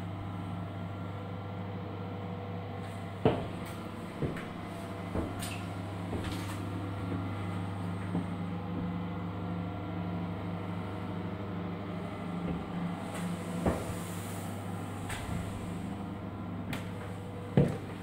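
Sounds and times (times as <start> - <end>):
low mechanical hum: 0.0 - 18.0.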